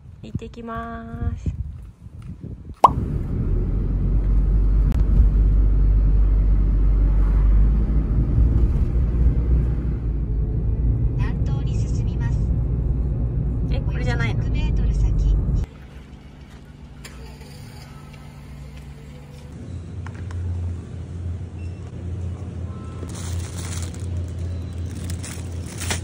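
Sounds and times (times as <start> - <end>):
car driving rumble: 2.8 - 26.0.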